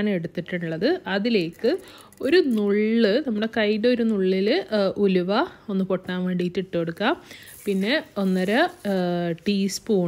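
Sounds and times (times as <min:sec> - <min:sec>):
woman speaking: 0:00.0 - 0:10.0
oil sizzling in a pot: 0:07.3 - 0:09.8.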